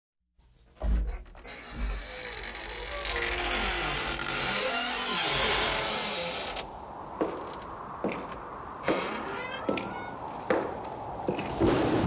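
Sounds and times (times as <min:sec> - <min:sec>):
heavy footstep: 0:00.8 - 0:02.0, 0:07.2 - 0:12.0
door creaking open: 0:00.8 - 0:06.7, 0:08.8 - 0:10.5.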